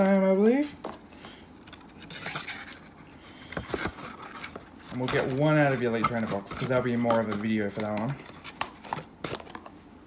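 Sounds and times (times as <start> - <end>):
card packs and boxes handled on table: 0.0 - 10.0.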